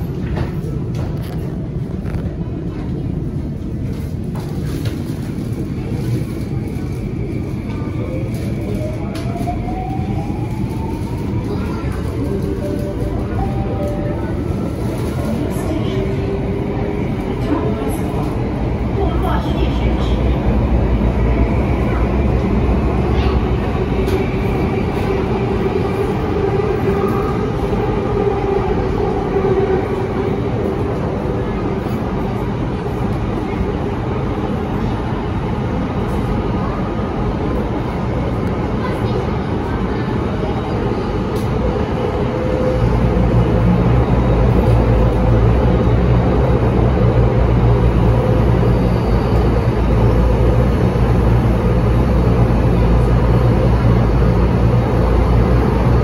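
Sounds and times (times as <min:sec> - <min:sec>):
rumble of wheels on rail: 0:00.0 - 0:56.0.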